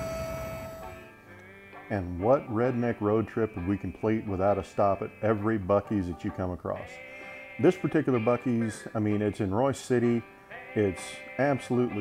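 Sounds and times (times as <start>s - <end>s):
high-pitched electrical whine: 0.0s - 1.2s
faint background music: 0.1s - 12.0s.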